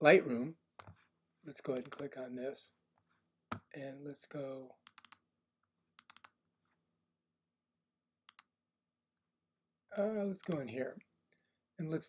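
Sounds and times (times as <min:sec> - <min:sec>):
computer mouse clicks: 0:01.7 - 0:02.1, 0:04.8 - 0:05.2, 0:06.0 - 0:06.4, 0:08.3 - 0:08.5, 0:10.4 - 0:10.8.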